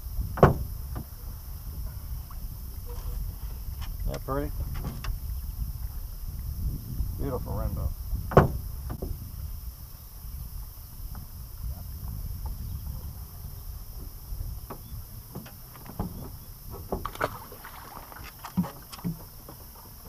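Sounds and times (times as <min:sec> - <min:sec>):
wind rumble on microphone: 0:00.0 - 0:20.0
net knocking against boat: 0:00.3 - 0:01.1, 0:08.2 - 0:09.2, 0:14.0 - 0:20.0
light water splashes: 0:10.6 - 0:20.0.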